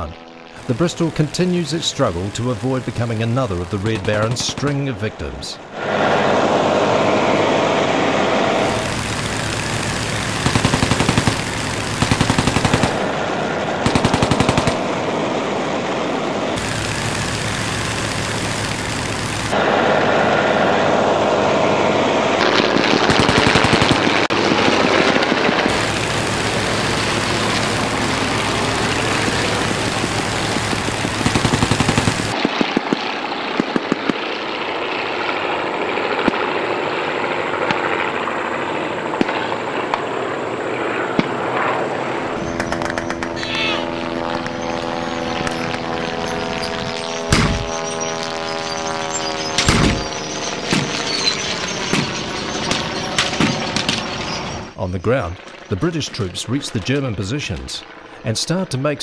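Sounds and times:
aero engine running: 0.0 - 59.0
machine-gun fire: 8.6 - 13.2, 13.8 - 15.0, 16.6 - 19.6, 22.9 - 34.3, 47.3 - 47.8, 49.5 - 54.5.

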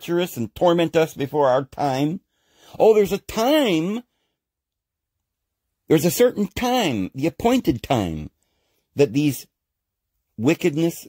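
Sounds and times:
man speaking: 0.0 - 4.1, 5.9 - 8.4, 9.0 - 9.6, 10.4 - 11.0.

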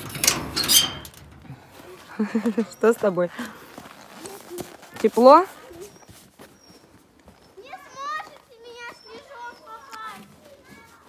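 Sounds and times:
young child calling out: 7.6 - 11.0.

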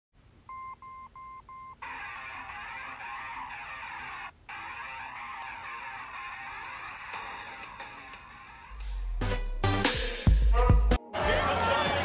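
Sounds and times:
music: 5.8 - 12.0.

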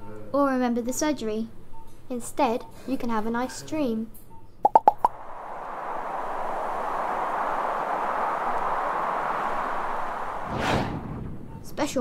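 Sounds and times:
cartoon pops: 4.6 - 5.2
wind-like rush: 5.0 - 12.0.

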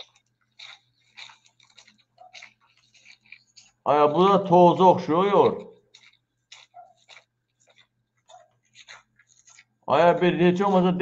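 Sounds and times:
man speaking loudly: 3.9 - 5.7, 9.9 - 11.0.

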